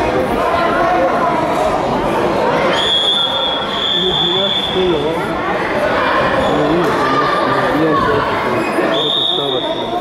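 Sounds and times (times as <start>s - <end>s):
voices in a hall: 0.0s - 10.0s
referee's whistle blast: 8.7s - 9.9s.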